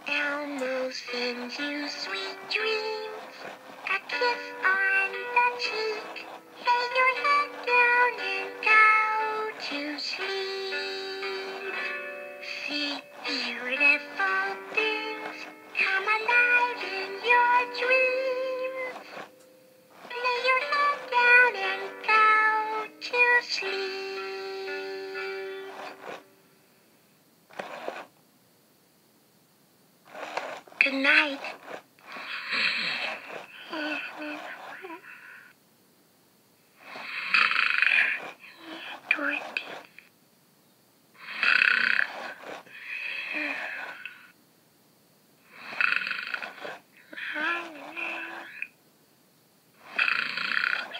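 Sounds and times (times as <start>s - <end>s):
soft murmured sounds: 0.0s - 45.7s
toy playing synthetic sung lullaby: 0.1s - 26.3s, 32.2s - 35.2s, 45.7s - 48.7s.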